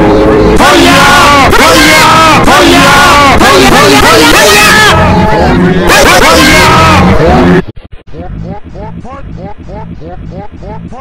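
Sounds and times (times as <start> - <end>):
loud overlapping shouting voices: 0.0 - 7.6.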